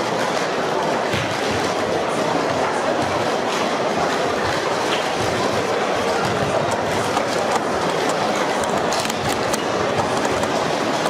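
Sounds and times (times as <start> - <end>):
plastic cups clattering: 4.0 - 11.0.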